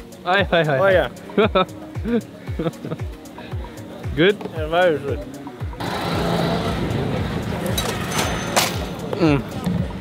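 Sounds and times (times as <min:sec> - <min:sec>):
outdoor ambient hiss: 0:00.0 - 0:05.8
background music with beat: 0:00.0 - 0:10.0.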